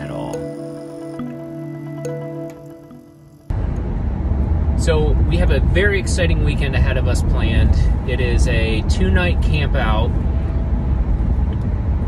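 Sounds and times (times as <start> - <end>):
car engine and tyre rumble: 3.4 - 12.0.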